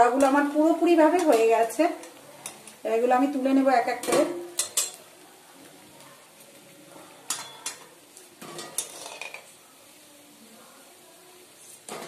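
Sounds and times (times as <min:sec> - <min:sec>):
spatula scraping frying pan: 0:00.0 - 0:05.0, 0:06.9 - 0:09.6
oil sizzling: 0:00.0 - 0:12.0.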